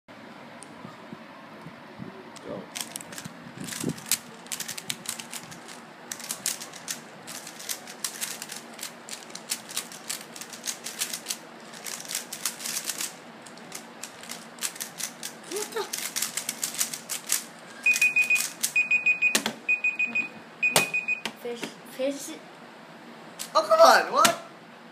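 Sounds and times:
puzzle cubes clicking: 2.8s - 18.8s.

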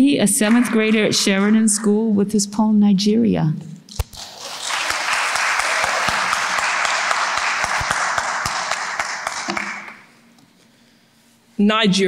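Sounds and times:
audience applauding: 4.1s - 10.1s.

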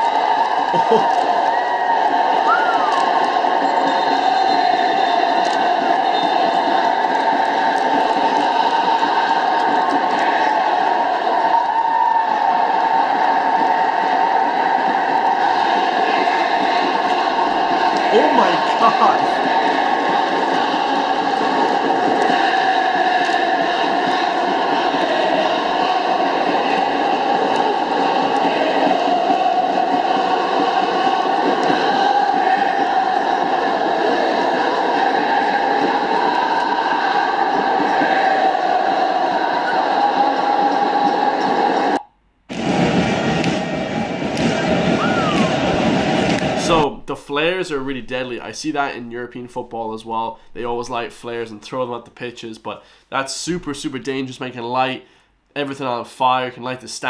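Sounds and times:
stadium crowd chanting: 0.0s - 51.2s.

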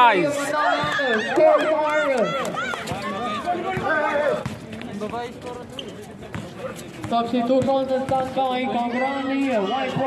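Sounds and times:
players running on court: 0.0s - 10.0s.

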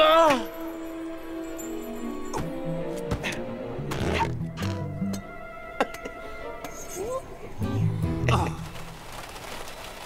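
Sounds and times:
background music with low notes: 0.0s - 9.1s.

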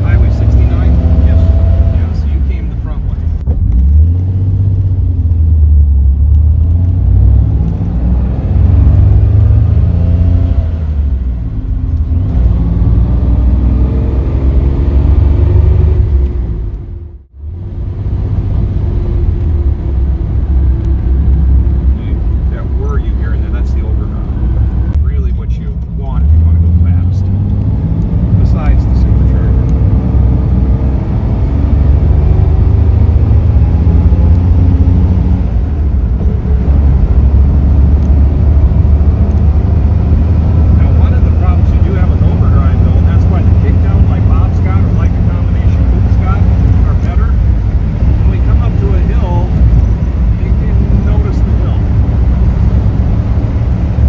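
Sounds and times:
car engine droning: 0.0s - 54.0s
road noise: 0.0s - 54.0s.

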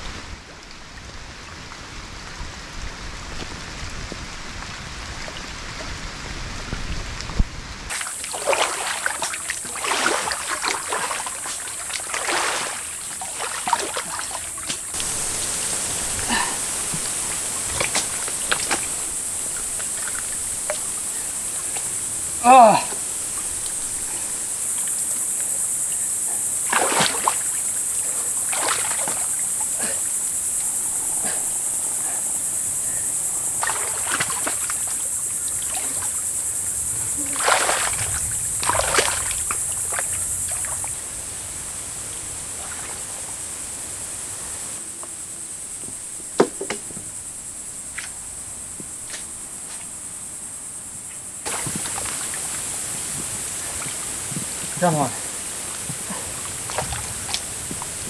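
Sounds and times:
muddy water splashing: 7.9s - 30.4s, 32.8s - 41.0s, 51.4s - 58.0s
high-pitched insect drone: 7.9s - 41.2s.

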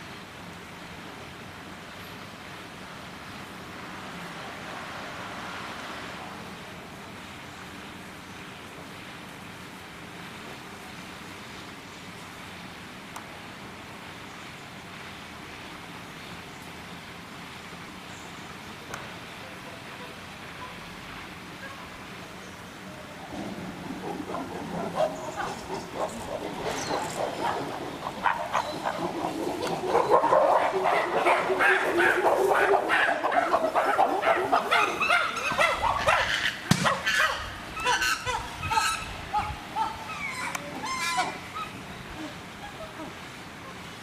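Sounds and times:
chimpanzees calling: 23.2s - 43.8s
sharp knocks: 36.7s - 37.0s.

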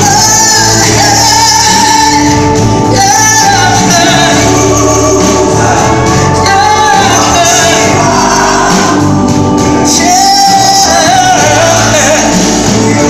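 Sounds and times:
woman singing into a microphone: 0.0s - 9.2s
backing singers: 0.0s - 13.0s
drums: 0.0s - 13.0s
guitar: 0.0s - 13.0s
keyboard: 0.0s - 13.0s.

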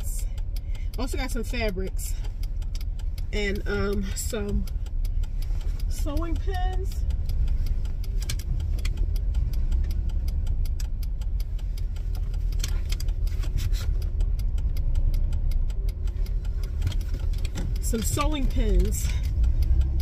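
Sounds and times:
car engine low rumble: 0.0s - 20.0s
faint clicks: 0.0s - 20.0s.

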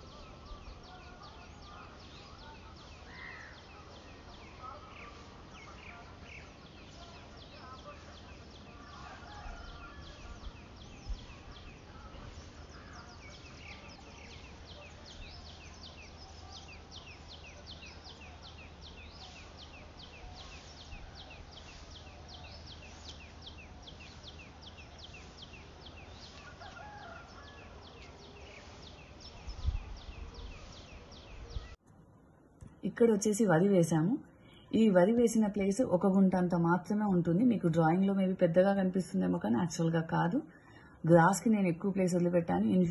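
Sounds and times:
small birds chirping: 0.0s - 31.8s, 32.6s - 42.9s.

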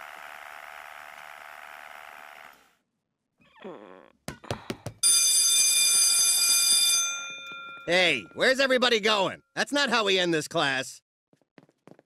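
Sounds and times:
electric bell ringing: 5.0s - 8.7s.

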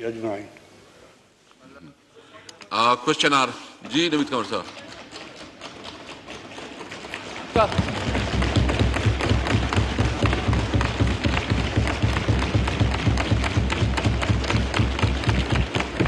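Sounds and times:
hands thumping wooden desks: 7.6s - 16.0s.

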